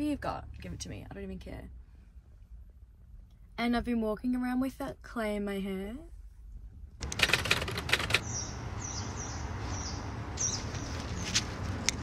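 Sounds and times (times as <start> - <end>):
small birds chirping: 8.2 - 11.6.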